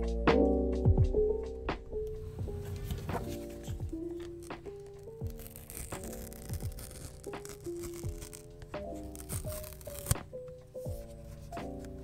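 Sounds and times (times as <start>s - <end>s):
background music with steady beat: 0.0s - 6.0s, 7.3s - 12.0s
paper seal tearing: 2.6s - 10.3s.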